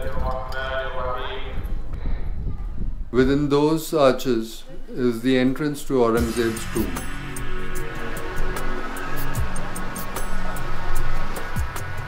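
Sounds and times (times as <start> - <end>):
low rumble: 6.2 - 12.0.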